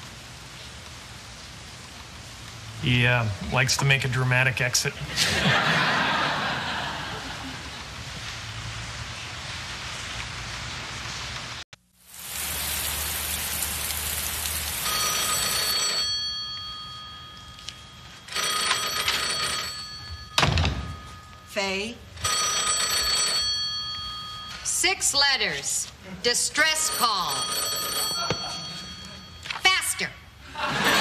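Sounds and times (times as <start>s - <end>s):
office telephone ringing: 14.8s - 25.7s, 26.5s - 30.1s.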